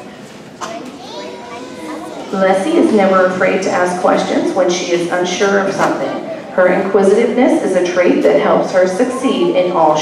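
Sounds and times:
children chattering: 0:00.0 - 0:10.0
child's voice rising: 0:00.7 - 0:02.4.

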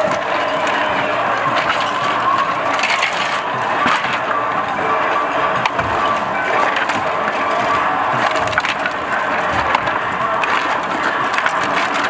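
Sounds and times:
sharp knocks and cracks: 0:00.0 - 0:12.0
wooden boards clattering: 0:00.0 - 0:12.0.

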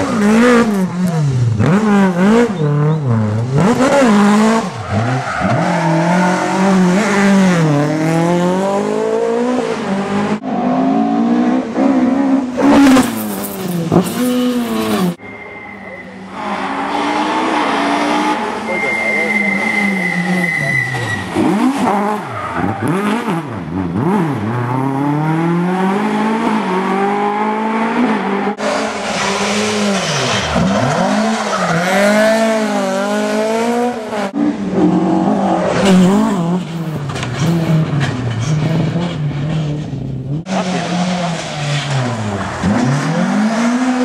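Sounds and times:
rally car engines revving: 0:00.0 - 0:44.0
tyre squeal: 0:12.9 - 0:23.2.

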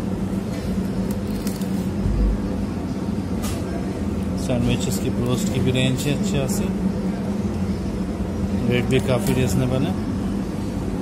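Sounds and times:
low machine hum: 0:00.0 - 0:11.0
man talking: 0:04.4 - 0:06.8, 0:08.6 - 0:10.0.

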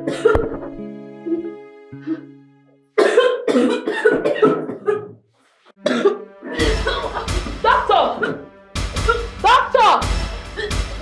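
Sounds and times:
woman coughing: 0:00.1 - 0:00.4, 0:03.0 - 0:05.2, 0:05.8 - 0:09.4, 0:10.6 - 0:10.8
dramatic music with heavy bass: 0:05.8 - 0:11.0.

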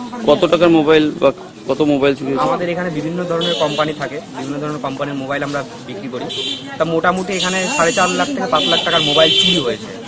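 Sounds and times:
man speaking: 0:00.2 - 0:10.0.

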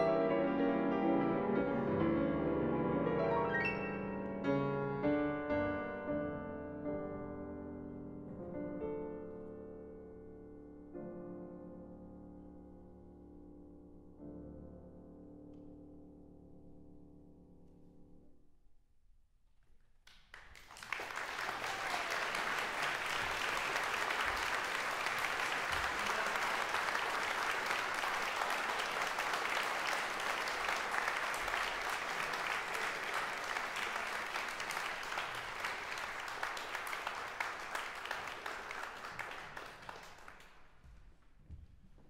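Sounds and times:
audience applauding: 0:20.1 - 0:40.8.

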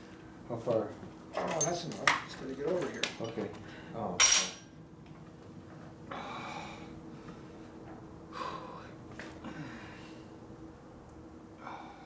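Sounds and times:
person breathing: 0:06.1 - 0:07.6, 0:08.3 - 0:10.3.

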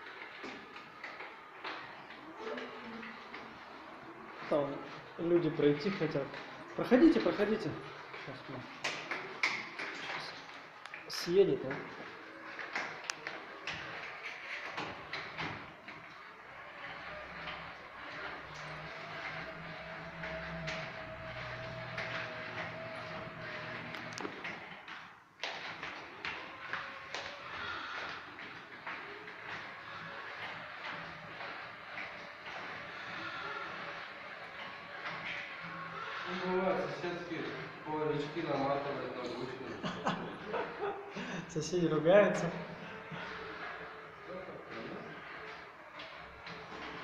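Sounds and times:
electric wheelchair motor whining: 0:00.0 - 0:47.0.

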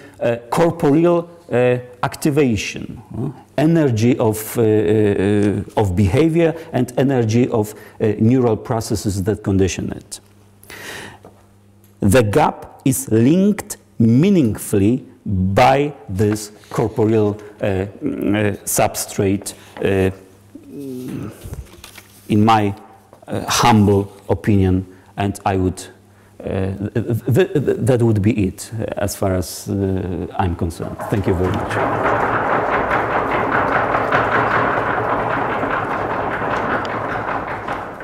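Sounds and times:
audience applauding: 0:31.0 - 0:38.0.

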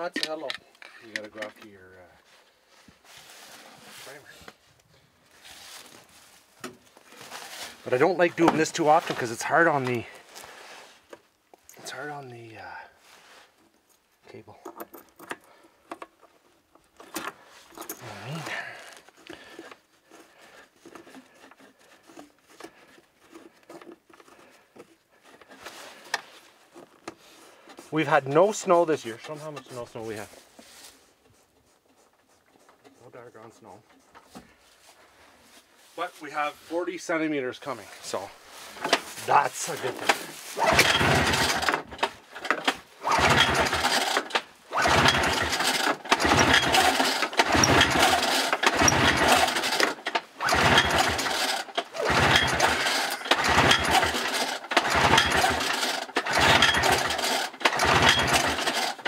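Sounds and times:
faint scratchy rustling: 0:00.9 - 0:14.5, 0:18.8 - 0:40.6.

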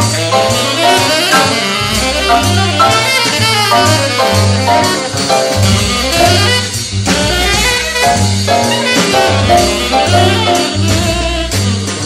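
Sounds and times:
small jazz ensemble playing: 0:00.0 - 0:12.0
walking bass line: 0:00.0 - 0:12.0.

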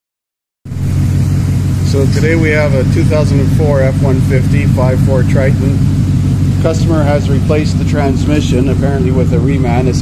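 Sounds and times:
truck engine idling: 0:00.7 - 0:10.0.

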